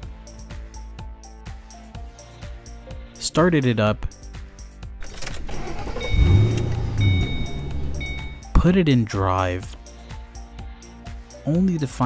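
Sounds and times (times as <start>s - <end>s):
car engine starting and idling: 5.0s - 8.8s.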